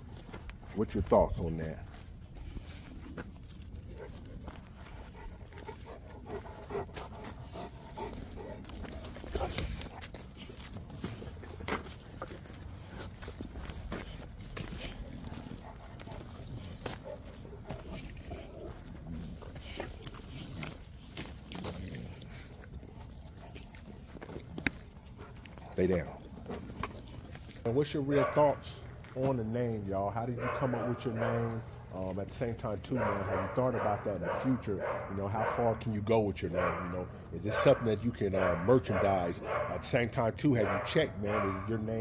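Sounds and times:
scuffles on dirt: 0.0 - 35.6
dogs vocalizing faintly: 1.9 - 42.0.

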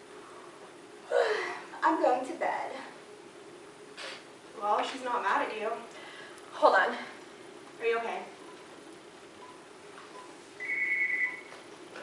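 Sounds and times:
phone ring tone beep: 10.2 - 11.6.

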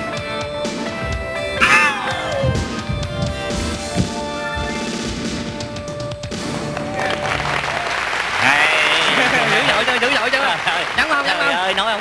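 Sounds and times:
dance music: 0.3 - 6.7
audience applause: 6.6 - 12.0.

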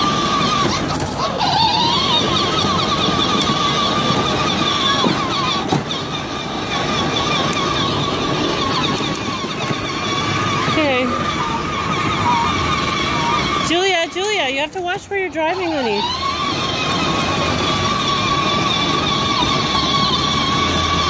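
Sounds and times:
electric motor whine: 0.0 - 21.0
plastic wheels rolling on asphalt: 0.0 - 21.0.

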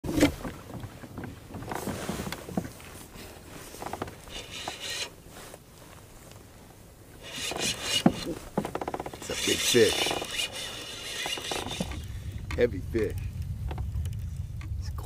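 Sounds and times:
knocks and scrapes against kayak hull: 0.0 - 14.8
fishing reel rattling: 4.3 - 5.2, 7.2 - 12.3.

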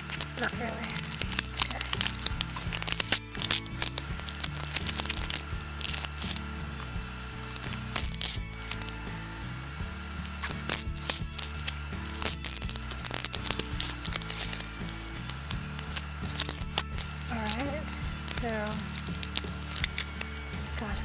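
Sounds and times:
plastic packaging crinkling: 0.0 - 9.1, 10.2 - 21.0
music with low held notes: 0.0 - 21.0
tape being pulled off: 0.0 - 21.0.

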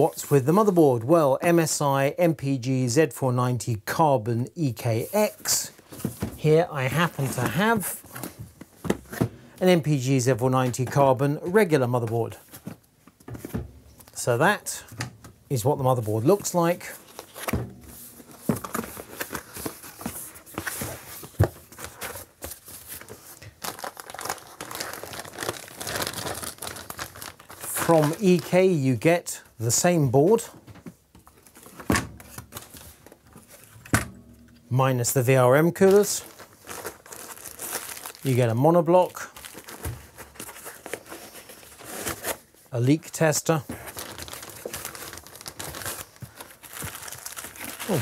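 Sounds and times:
plastic packaging crinkling: 16.4 - 28.8, 35.7 - 42.5, 43.8 - 48.0.

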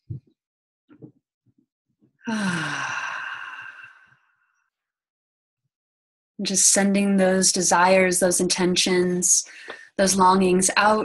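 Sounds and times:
woman sighing: 2.3 - 4.1.

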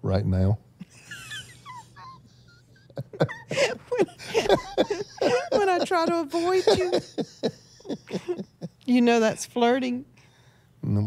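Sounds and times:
woman laughing wheezily: 0.9 - 8.9.

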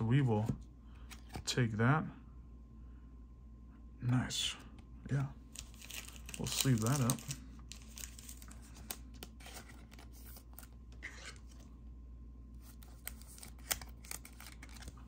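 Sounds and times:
thin plastic crinkling: 5.5 - 11.6.

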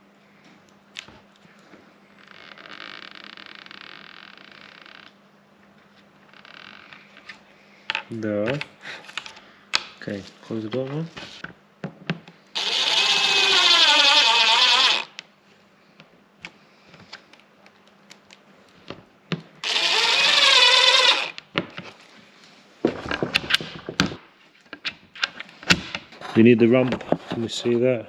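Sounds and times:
cordless drill driving screws: 12.6 - 15.2, 19.6 - 21.4.

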